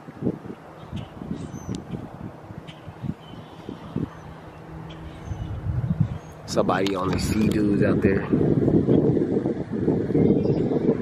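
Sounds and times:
distant watercraft engine hum: 0.0s - 11.0s.

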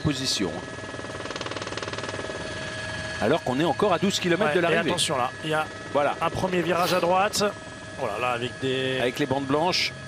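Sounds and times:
motor drone with fast throb: 0.0s - 10.0s.

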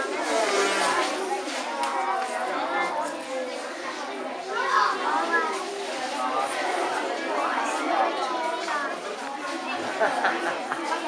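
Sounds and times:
children chattering: 0.0s - 11.0s
high child's voice: 1.2s - 5.8s.

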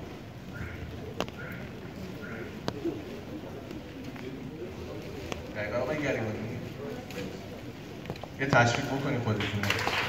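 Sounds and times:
bird calling: 0.0s - 4.0s
outdoor background noise: 0.0s - 10.0s.

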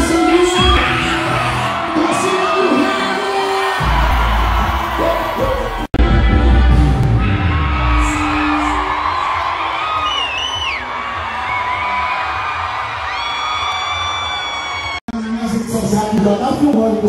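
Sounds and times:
live band music: 0.0s - 1.6s
crowd cheering and screaming: 0.0s - 17.0s.

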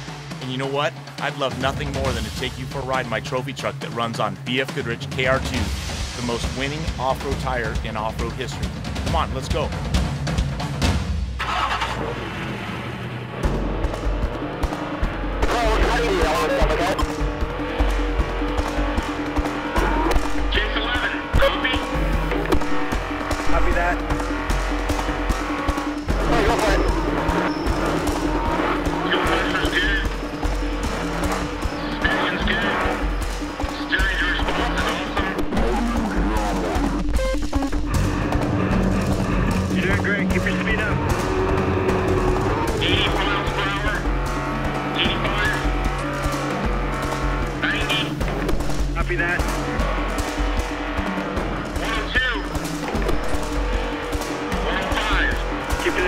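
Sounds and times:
background music: 0.0s - 56.0s
truck engine and tyre noise: 0.0s - 56.0s.

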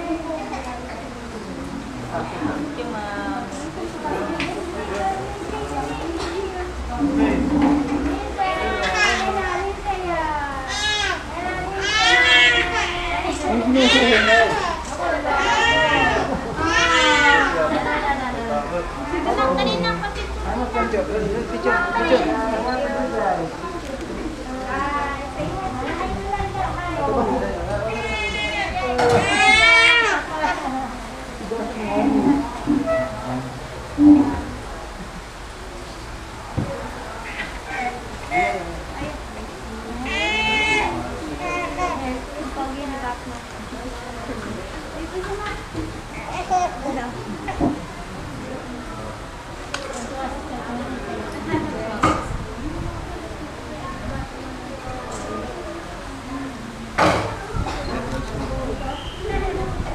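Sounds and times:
voices talking: 0.0s - 59.9s
young children's voices: 57.2s - 59.9s.

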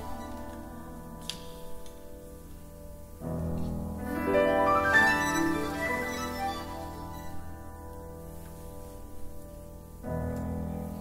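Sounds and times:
chamber ensemble soft chord: 3.9s - 10.0s.

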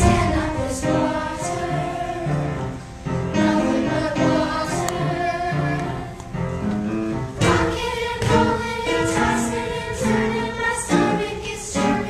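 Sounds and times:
young voices singing: 0.0s - 12.0s.

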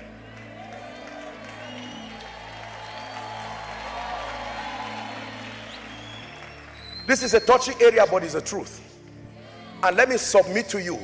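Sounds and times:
faint audience noise: 8.9s - 10.4s.

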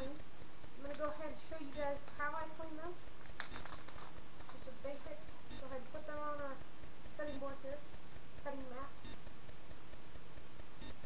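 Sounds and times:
plastic bag crinkling: 3.3s - 4.7s.

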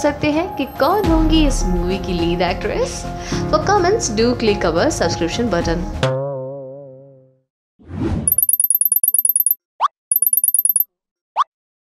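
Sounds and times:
high tinkling ticks: 8.3s - 10.8s.

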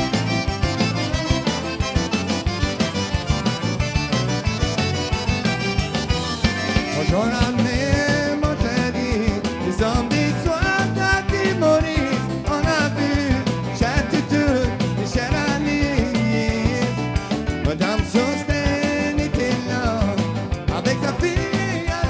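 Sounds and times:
accordion: 0.0s - 22.0s
live band playing: 0.0s - 22.0s
man singing: 6.5s - 22.0s.

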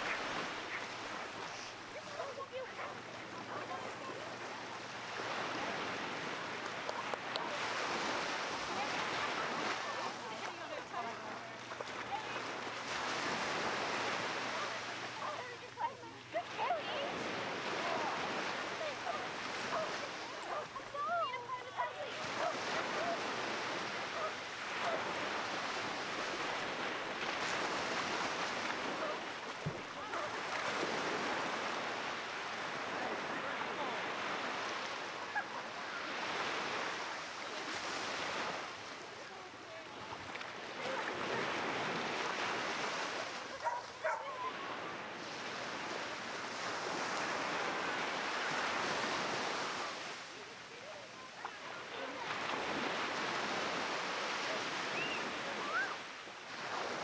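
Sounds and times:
voices: 0.0s - 56.9s
small surf breaking on sand: 0.0s - 57.0s
dog sounds: 43.6s - 44.5s.

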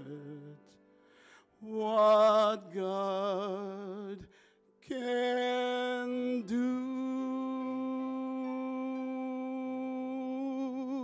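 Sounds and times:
man singing long note: 4.9s - 11.0s.

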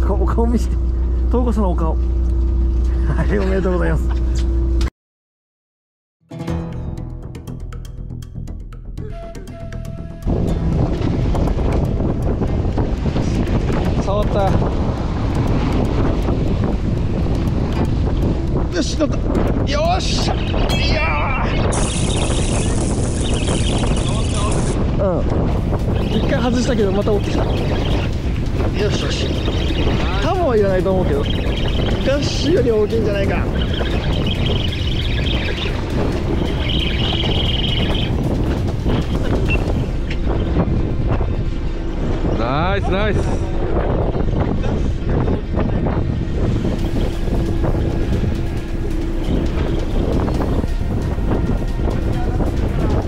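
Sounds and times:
low rumble: 0.0s - 4.9s, 8.9s - 53.0s
background music: 6.3s - 21.0s, 45.4s - 53.0s
wind buffeting microphone: 9.1s - 53.0s
steady tone: 25.5s - 53.0s.

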